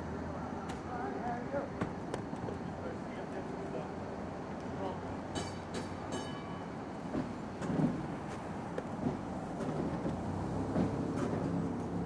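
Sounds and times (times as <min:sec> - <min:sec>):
streetcar rumbling on rails: 0:00.0 - 0:12.0.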